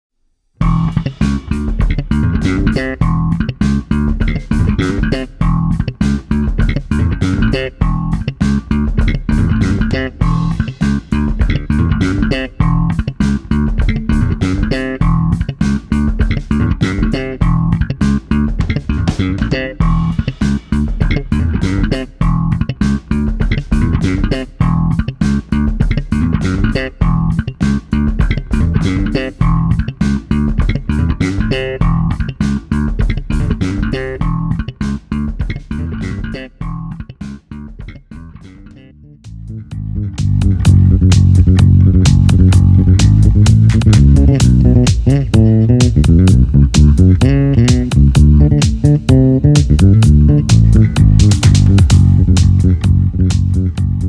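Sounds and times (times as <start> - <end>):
slap bass funky riff: 0.6 - 54.0.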